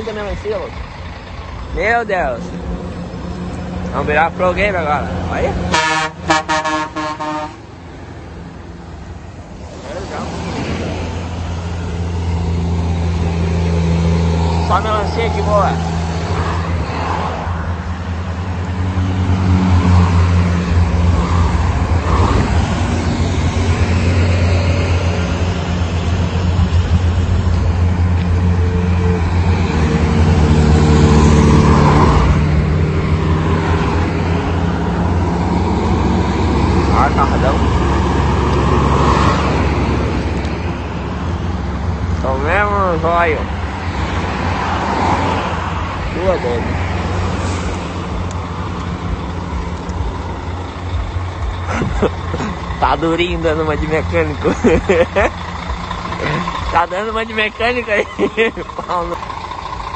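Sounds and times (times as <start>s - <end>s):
traffic passing: 0.0s - 59.9s.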